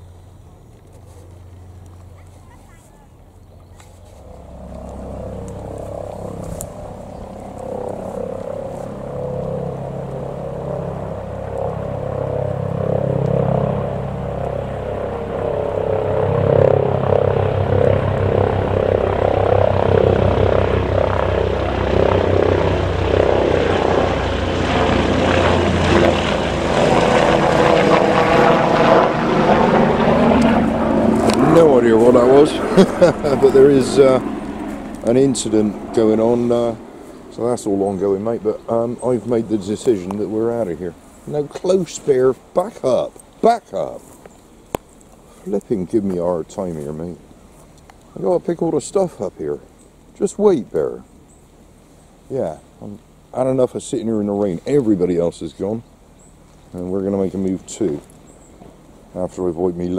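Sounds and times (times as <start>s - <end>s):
helicopter flying over: 0.0s - 59.9s.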